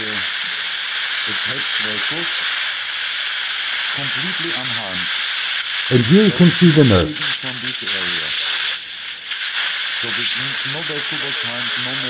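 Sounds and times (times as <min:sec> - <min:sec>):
steady hiss: 0:00.0 - 0:12.0
man speaking indistinctly: 0:05.9 - 0:07.3.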